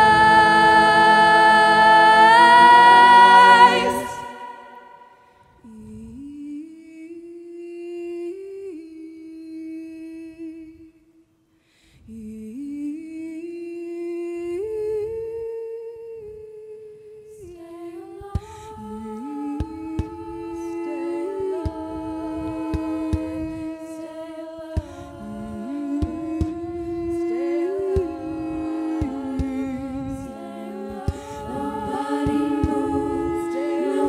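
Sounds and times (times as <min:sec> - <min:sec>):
women humming sustained chords: 0:00.0 - 0:05.2, 0:19.4 - 0:34.0.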